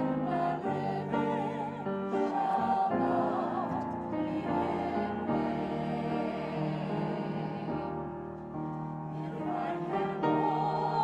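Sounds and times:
choir singing: 0.0 - 8.4, 9.1 - 11.0.

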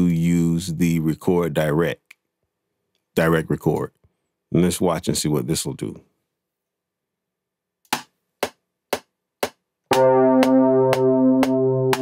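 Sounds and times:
metronome clicks: 9.9 - 12.0
sustained synth note: 9.9 - 12.0.

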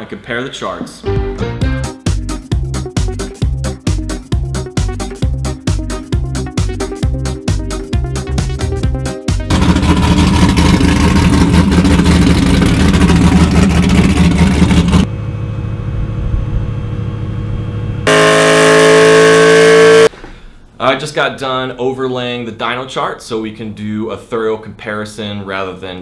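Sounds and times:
car engine revving: 9.5 - 15.1, 18.0 - 20.1.

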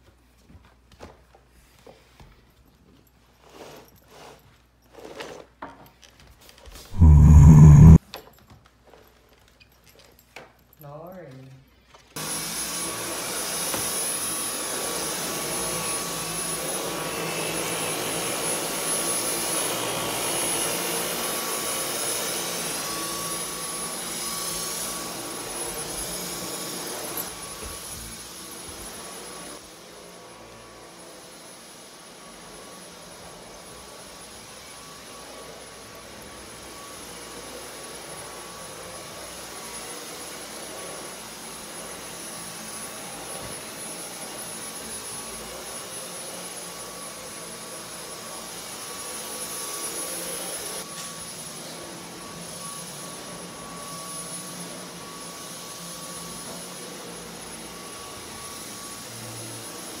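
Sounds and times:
vacuum cleaner running: 6.9 - 8.0, 12.2 - 60.0.

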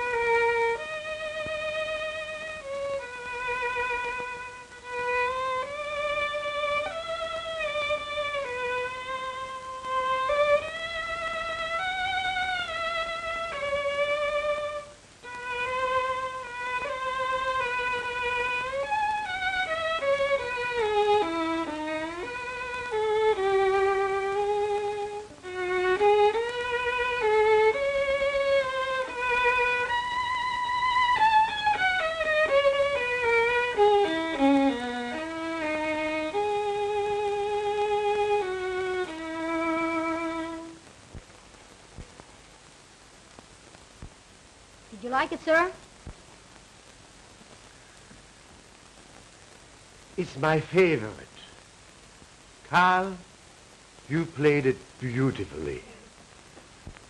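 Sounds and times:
solo violin melody: 0.0 - 40.9.

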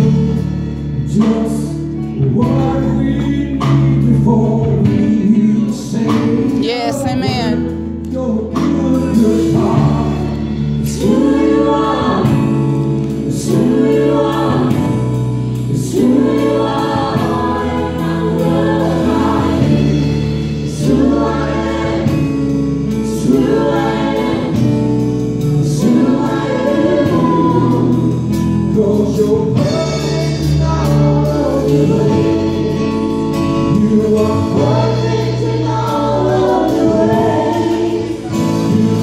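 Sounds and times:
group singing gospel song: 0.0 - 39.0
live band accompaniment: 0.0 - 39.0.

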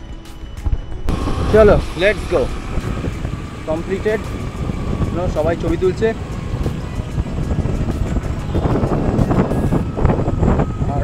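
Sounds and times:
wind and road noise: 0.0 - 11.0
low rumble: 0.7 - 11.0.

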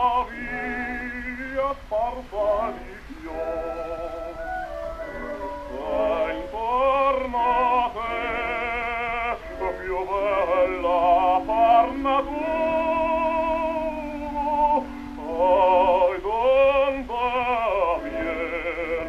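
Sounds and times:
operatic singing: 0.0 - 19.0
record surface rumble: 0.0 - 19.0.

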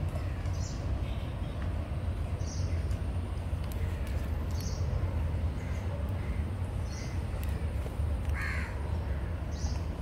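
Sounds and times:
crow cawing: 5.6 - 6.4, 8.3 - 9.3.

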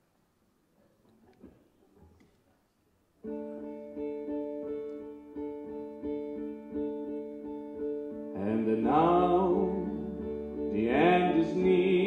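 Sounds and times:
electric guitar picking notes: 3.2 - 12.0
steady held chords: 3.2 - 12.0.

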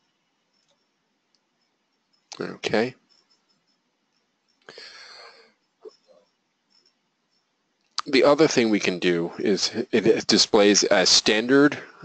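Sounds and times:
person breathing: 4.7 - 5.6, 11.7 - 12.0.

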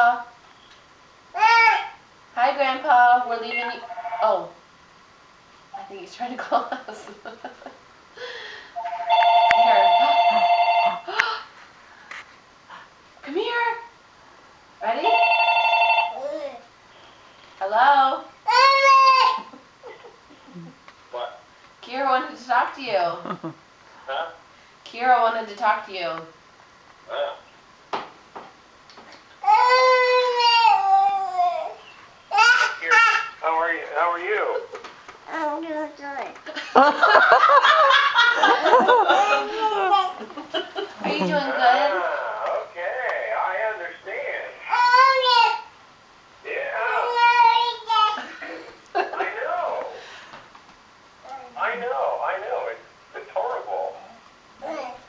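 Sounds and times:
toddler calling: 1.4 - 2.0, 18.5 - 19.5, 29.4 - 33.4, 44.7 - 45.7, 46.9 - 48.2.

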